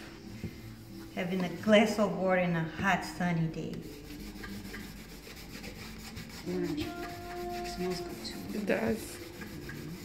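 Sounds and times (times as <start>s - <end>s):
cloth pad rubbing wax on wood: 3.7s - 10.0s.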